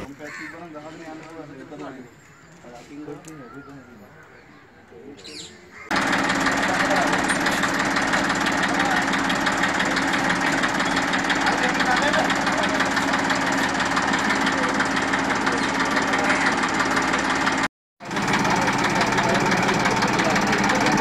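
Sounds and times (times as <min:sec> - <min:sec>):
diesel tractor engine idling: 0:05.9 - 0:21.0.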